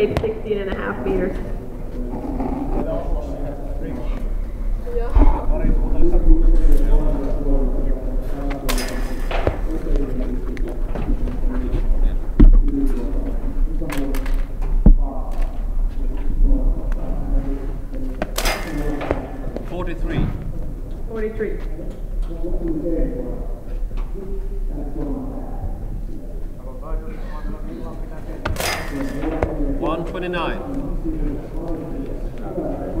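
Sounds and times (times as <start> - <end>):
voices talking: 0.0 - 33.0.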